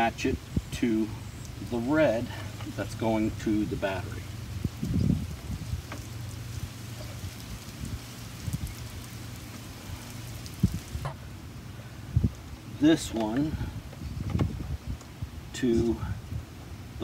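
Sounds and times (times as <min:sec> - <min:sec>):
clicks and rustles of wires: 0:04.7 - 0:11.2.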